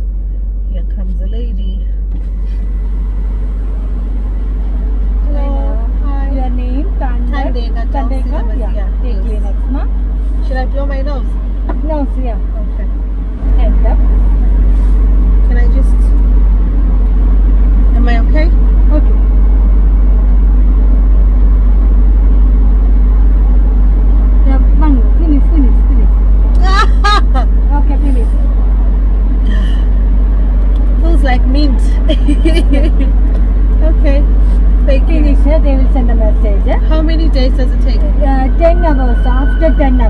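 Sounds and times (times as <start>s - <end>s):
low rumble inside car cabin: 0.0s - 40.0s.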